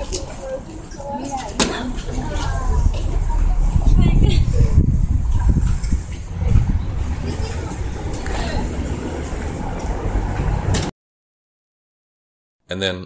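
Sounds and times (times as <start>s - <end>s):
indistinct voices: 0.0s - 10.9s
steady low rumble: 1.9s - 10.9s.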